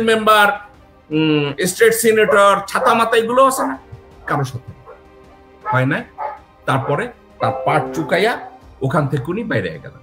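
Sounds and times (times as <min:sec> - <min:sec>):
faint background music: 0:00.0 - 0:10.0
man speaking: 0:06.7 - 0:09.4.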